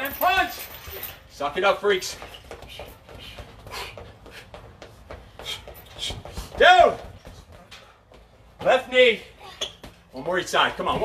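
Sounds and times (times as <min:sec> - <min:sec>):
feet running in place: 0:00.0 - 0:11.0
hard breathing: 0:02.2 - 0:06.6.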